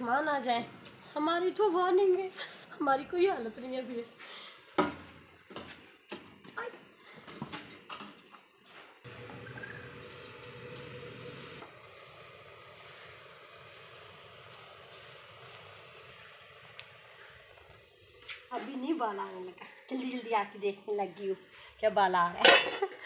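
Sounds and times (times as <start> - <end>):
gas stove burner hissing: 0.0 - 23.0.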